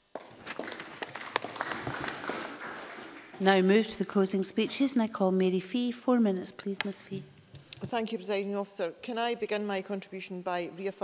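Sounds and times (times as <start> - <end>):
applause: 0.1 - 3.7.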